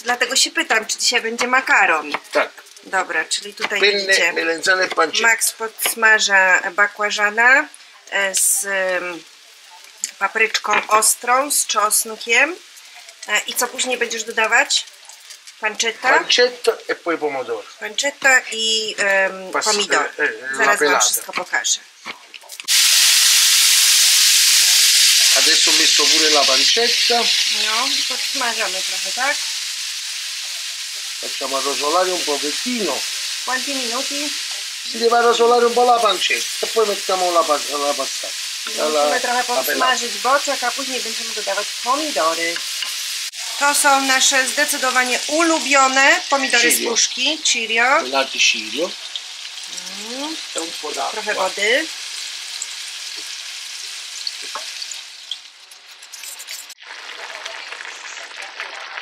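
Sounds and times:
food sizzling in hot oil: 0.0 - 59.0
spatula stirring in pan: 14.1 - 15.6, 26.0 - 37.2, 40.5 - 47.2, 52.4 - 58.7.

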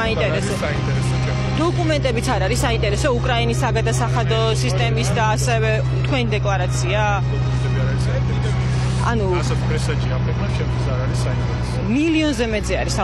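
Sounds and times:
steady low hum: 0.0 - 13.0
voices talking: 0.0 - 13.0.

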